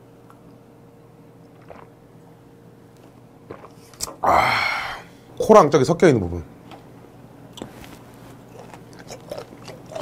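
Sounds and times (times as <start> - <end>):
man drinking: 1.4 - 2.0, 3.5 - 5.1.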